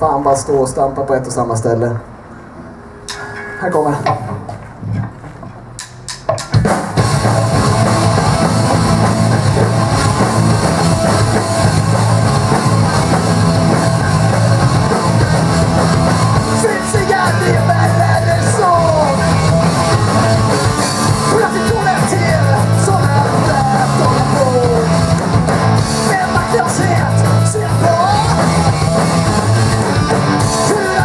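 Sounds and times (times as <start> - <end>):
rock band playing: 5.6 - 31.0
sharp clicks: 5.8 - 6.7
person singing: 16.5 - 19.7, 21.2 - 25.1, 25.8 - 29.1, 30.4 - 31.0.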